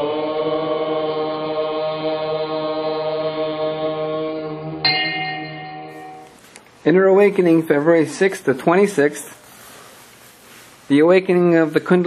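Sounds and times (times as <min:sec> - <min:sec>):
low steady drone: 0:00.0 - 0:06.3
chanting held note: 0:00.0 - 0:06.4
bright ringing tone: 0:04.8 - 0:06.4.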